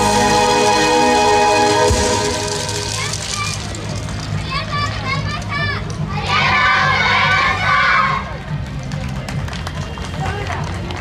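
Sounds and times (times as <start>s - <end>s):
street crowd chatter: 0.0s - 11.0s.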